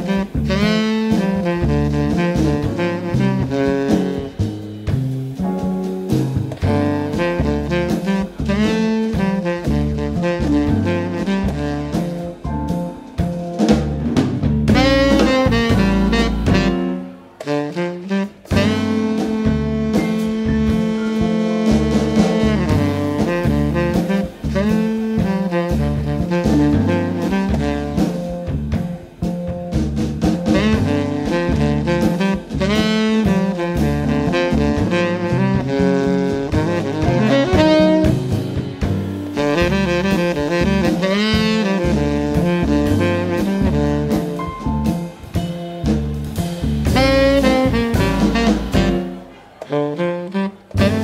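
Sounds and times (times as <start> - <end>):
tenor saxophone melody: 0.0 - 4.5, 6.7 - 12.4, 14.7 - 28.4, 30.6 - 45.5, 46.8 - 51.0
double bass: 0.0 - 51.0
drum kit: 0.0 - 51.0
piano: 0.0 - 51.0.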